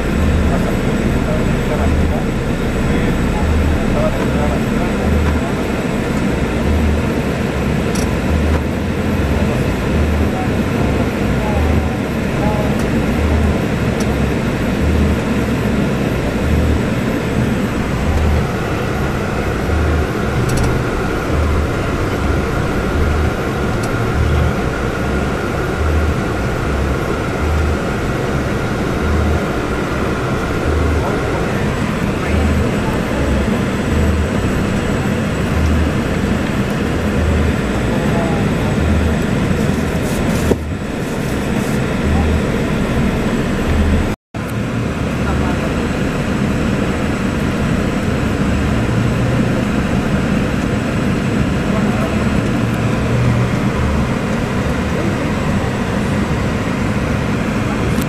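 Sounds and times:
coach engine and road rumble: 0.0s - 58.0s
faint steady whine: 0.0s - 58.0s.

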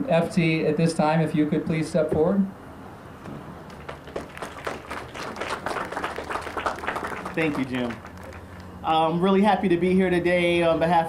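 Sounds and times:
audience applauding: 3.7s - 8.8s.

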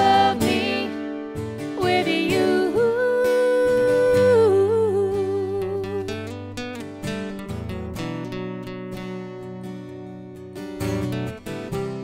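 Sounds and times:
acoustic guitars strummed: 0.0s - 12.0s.

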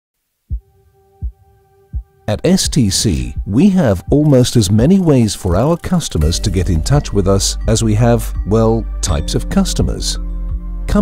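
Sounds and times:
steady synthesized tone: 4.8s - 9.0s.

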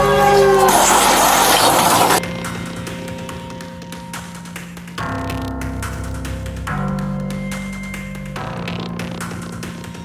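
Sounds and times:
train horn blaring: 0.0s - 2.2s
loud crash of wreckage: 0.3s - 2.2s.

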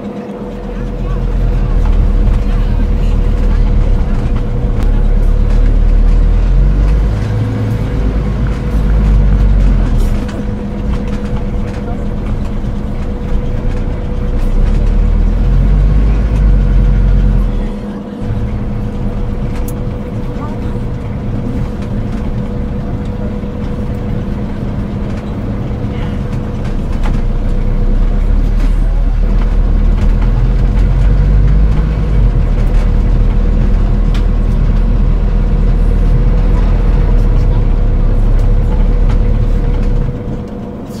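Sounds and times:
car engine drone: 0.0s - 41.0s
low rumble: 0.0s - 41.0s.

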